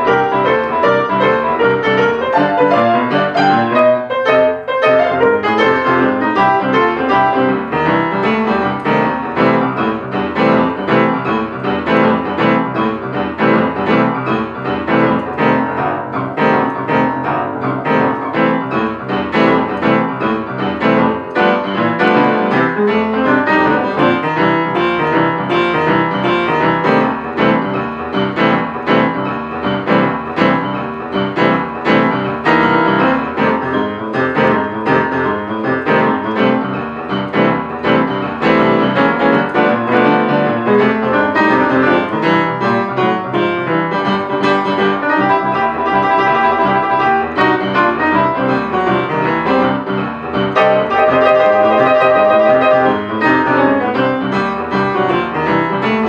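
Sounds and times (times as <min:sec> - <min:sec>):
boogie-woogie piano: 0:00.0 - 0:56.0.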